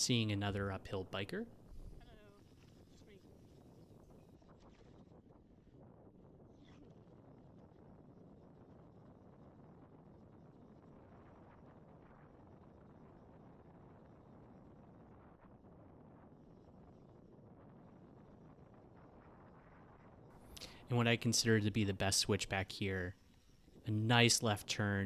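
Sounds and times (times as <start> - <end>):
wind on microphone: 0.0 - 25.0.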